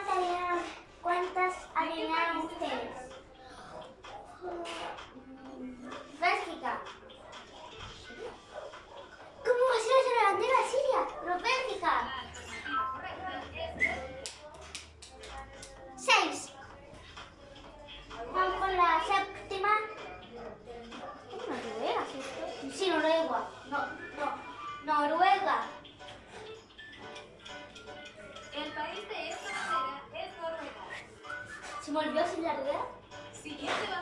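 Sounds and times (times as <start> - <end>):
faint music: 0.0 - 34.0.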